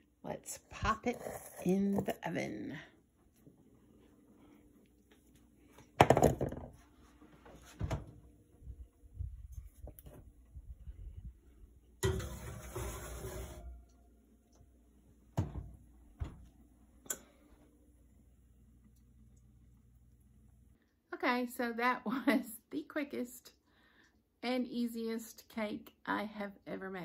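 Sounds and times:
oven door clunk: 0:12.0 - 0:13.2.

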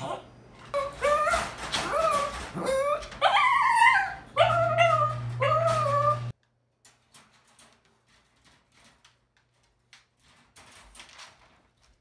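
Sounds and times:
puppy whining and howling: 0:00.7 - 0:06.4.

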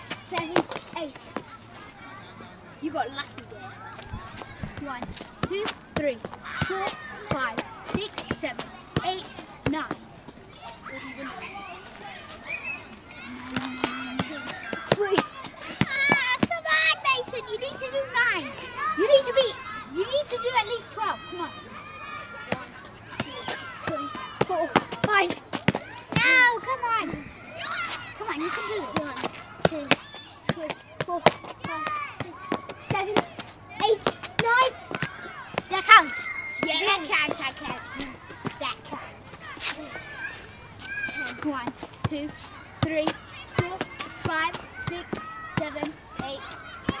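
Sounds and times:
football bouncing on paving: 0:04.0 - 0:10.0, 0:13.5 - 0:16.6, 0:23.2 - 0:26.4, 0:28.8 - 0:35.9
child's high voice: 0:10.6 - 0:47.0.

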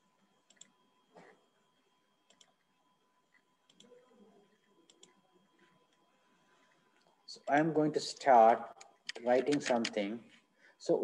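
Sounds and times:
computer mouse clicks: 0:00.5 - 0:00.8, 0:02.3 - 0:02.6, 0:03.3 - 0:04.0, 0:04.9 - 0:05.2, 0:08.8 - 0:10.0.

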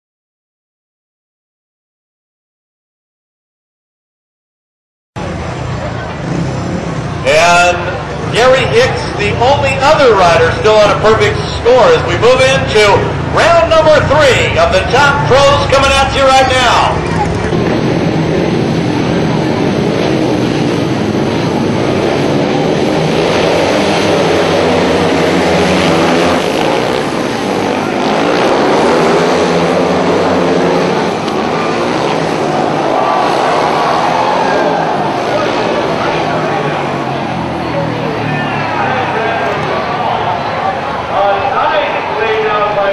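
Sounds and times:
low rumble of stadium noise: 0:05.2 - 0:42.9
racing motorcycle engines: 0:05.2 - 0:42.9
announcer's voice over loudspeaker: 0:07.2 - 0:17.4, 0:37.7 - 0:42.9.

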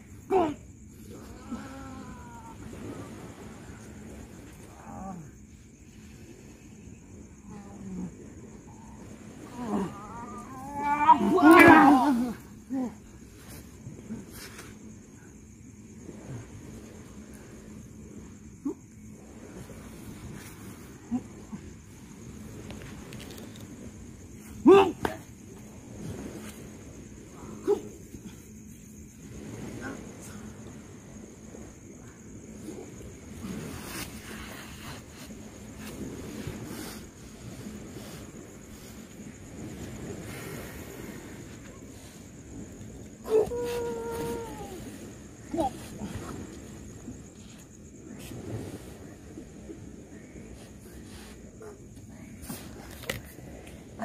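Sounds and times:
drawn-out falling cry: 0:09.4 - 0:12.5, 0:43.2 - 0:45.9
person grunting and shouting: 0:09.6 - 0:13.0.

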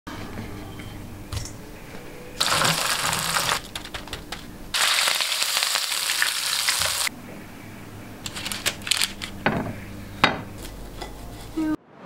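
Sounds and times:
food sizzling in frying pan: 0:02.4 - 0:03.6, 0:04.7 - 0:07.1.

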